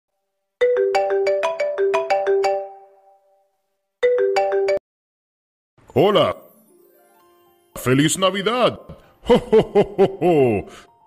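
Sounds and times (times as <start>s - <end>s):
phone ringtone: 0.6s - 3.2s, 4.0s - 4.8s
man speaking: 5.9s - 6.5s, 7.8s - 9.0s.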